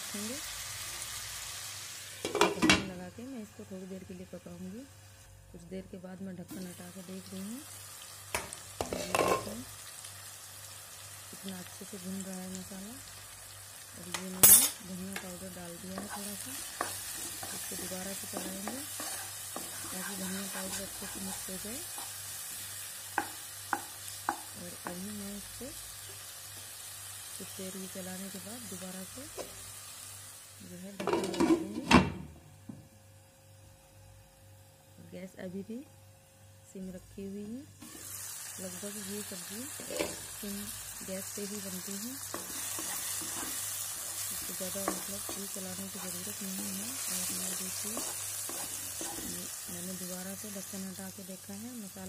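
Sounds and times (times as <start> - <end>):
masala sizzling in hot oil: 0.0 - 5.4, 6.4 - 31.4, 37.8 - 52.0
spoon stirring and knocking a pan: 8.3 - 9.6, 14.1 - 22.4, 23.0 - 25.0, 42.2 - 49.5.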